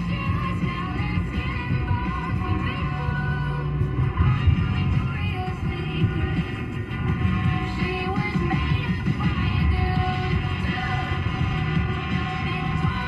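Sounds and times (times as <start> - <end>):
car radio music: 0.0 - 13.0.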